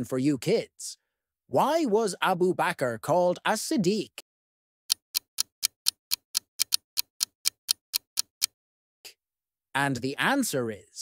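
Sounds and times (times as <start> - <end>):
clock ticking quickly: 4.9 - 8.6.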